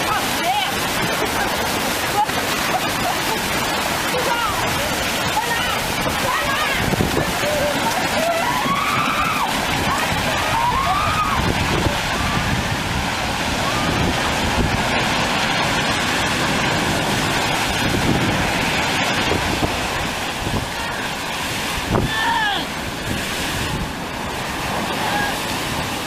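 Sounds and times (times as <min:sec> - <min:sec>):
heavy surf breaking: 0:00.0 - 0:26.0
wind buffeting microphone: 0:00.0 - 0:26.0.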